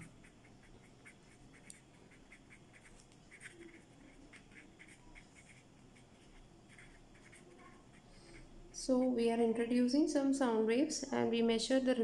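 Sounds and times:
pen scratching on paper: 0:00.0 - 0:08.5.

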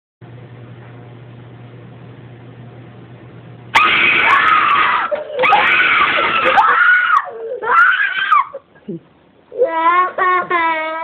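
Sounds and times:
person screaming in fright: 0:03.8 - 0:08.6
child wailing and sobbing: 0:04.2 - 0:08.6, 0:09.5 - 0:11.0.

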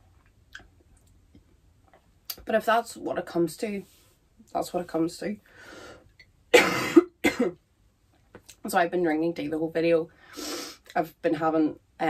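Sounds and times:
woman coughing: 0:06.5 - 0:07.6.

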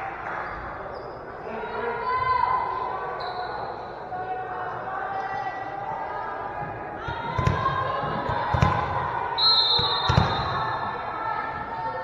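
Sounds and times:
crowd chatter: 0:00.0 - 0:12.0
referee whistle: 0:03.2 - 0:03.9, 0:09.4 - 0:10.7.

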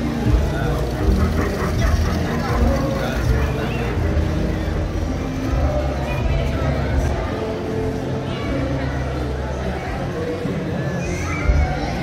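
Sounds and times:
model train rumbling on track: 0:00.0 - 0:06.0
crowd talking: 0:00.0 - 0:12.0.

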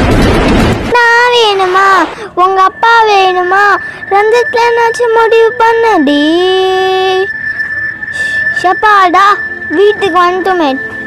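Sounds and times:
high voice holding long note: 0:01.2 - 0:07.3.

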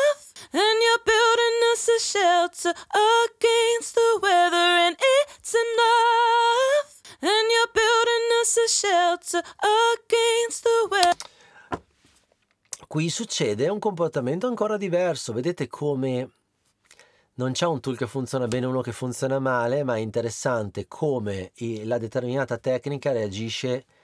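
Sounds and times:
woman singing unaccompanied: 0:00.0 - 0:11.2.

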